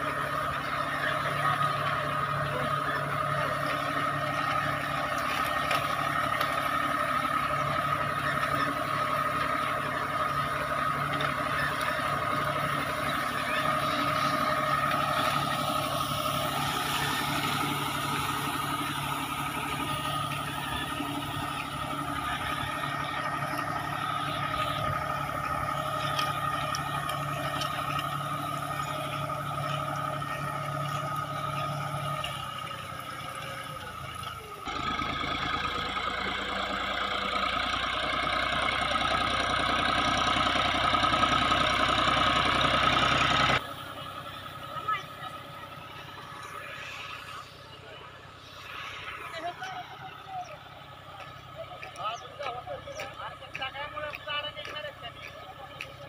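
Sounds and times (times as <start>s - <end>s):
tractor diesel engine under load: 0.0s - 56.0s
steady whine: 43.5s - 56.0s.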